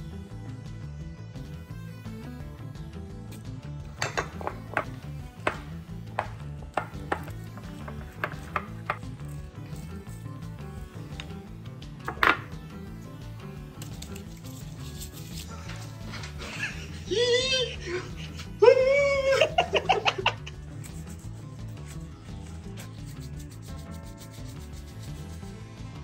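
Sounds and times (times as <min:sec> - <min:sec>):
background music: 0:00.0 - 0:26.0
wooden spoon scraping ceramic bowl: 0:04.0 - 0:09.0.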